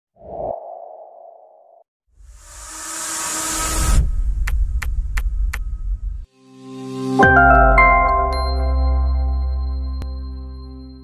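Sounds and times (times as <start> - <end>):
whoosh: 0.2 - 1.8.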